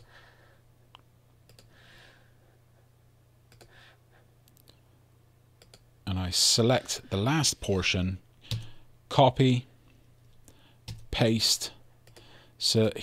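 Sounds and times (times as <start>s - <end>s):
low steady hum: 0.0s - 13.0s
computer mouse clicks: 1.4s - 1.7s, 3.5s - 3.7s, 5.6s - 5.9s, 8.5s - 8.8s, 12.0s - 12.3s.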